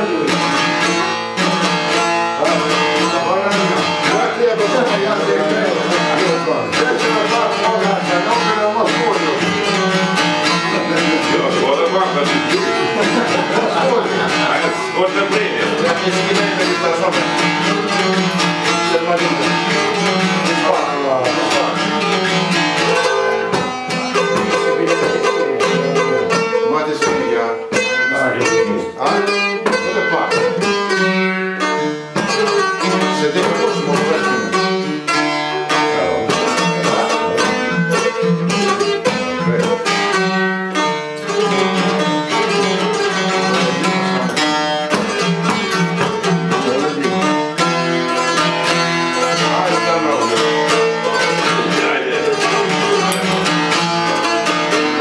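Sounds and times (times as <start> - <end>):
plucked lutes over drone: 0.0 - 55.0.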